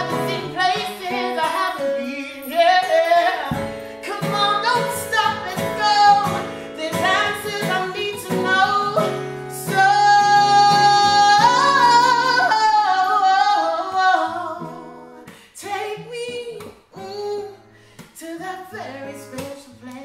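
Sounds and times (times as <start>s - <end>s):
acoustic guitar: 0.0s - 20.0s
woman singing: 0.0s - 20.0s.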